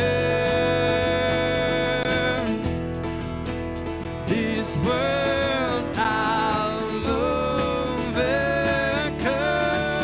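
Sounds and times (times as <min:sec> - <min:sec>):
people singing: 0:00.0 - 0:02.6, 0:04.3 - 0:10.0
acoustic guitar strummed: 0:00.0 - 0:10.0.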